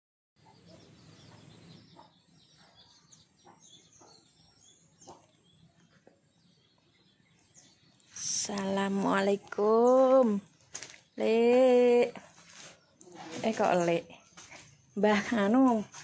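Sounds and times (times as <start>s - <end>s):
faint bird chirping: 0.4s - 16.0s.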